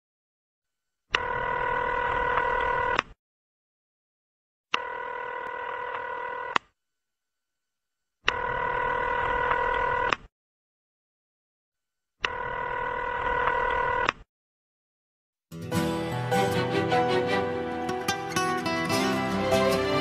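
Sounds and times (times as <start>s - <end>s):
telephone ringing: 1.2s - 3.0s, 4.8s - 6.5s.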